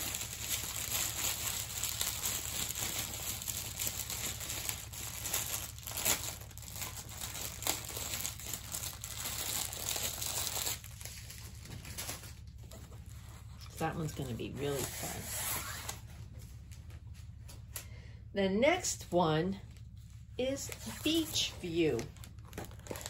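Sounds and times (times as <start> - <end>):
plastic film crinkling: 0.0 - 16.8, 19.7 - 23.0.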